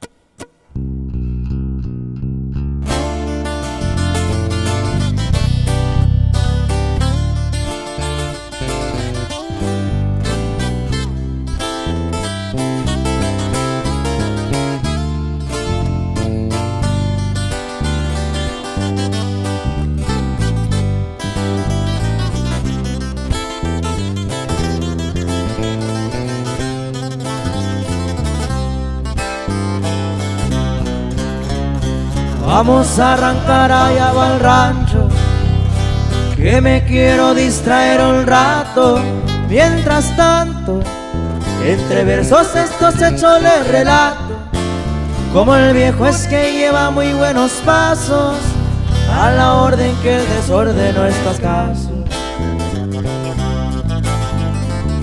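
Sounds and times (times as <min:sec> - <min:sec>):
bass: 0:00.0 - 0:55.0
guitars playing: 0:00.0 - 0:55.0.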